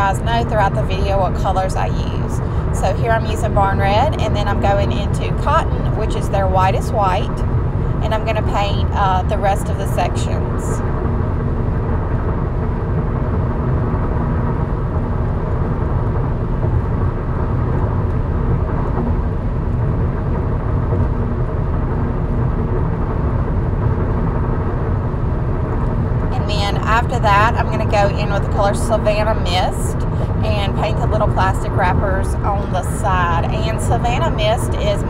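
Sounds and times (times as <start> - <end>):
faint even hum: 0.0 - 35.0
low-pitched background noise: 0.0 - 35.0.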